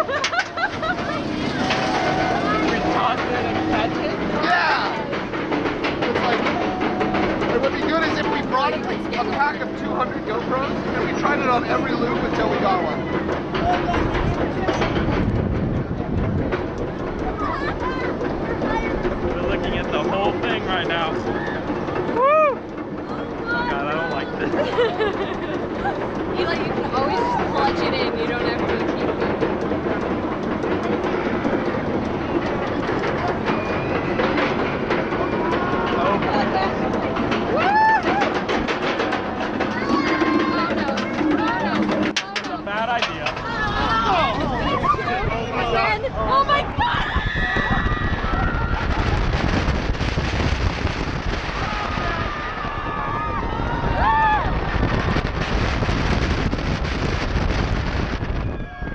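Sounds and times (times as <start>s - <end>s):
low rumble: 0.0s - 58.9s
roller coaster chain clicking: 0.0s - 58.9s
riders' voices and whoop: 21.1s - 22.7s, 26.9s - 27.7s, 37.4s - 38.6s, 43.3s - 49.4s, 51.5s - 54.9s, 58.4s - 58.9s.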